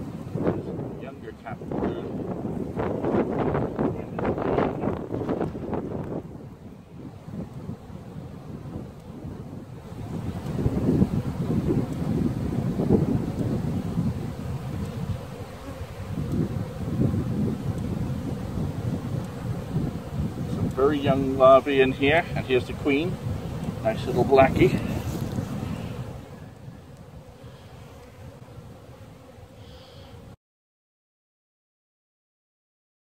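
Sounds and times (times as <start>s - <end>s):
wind buffeting microphone: 0.0s - 29.1s.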